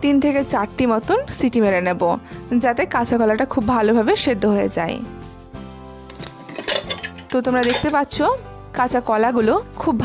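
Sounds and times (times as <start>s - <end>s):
metal lid clinking against pot: 6.1s - 8.1s.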